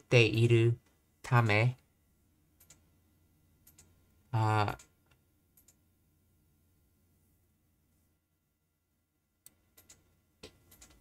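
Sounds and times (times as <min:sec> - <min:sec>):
keyboard or mouse clicks: 0:02.6 - 0:02.8, 0:03.6 - 0:03.9, 0:04.7 - 0:05.8, 0:09.4 - 0:11.0.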